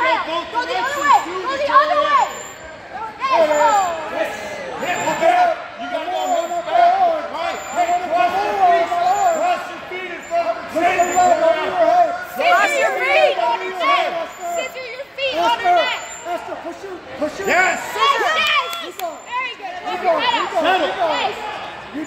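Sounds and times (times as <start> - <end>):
overlapping voices calling out: 0.0 - 22.0.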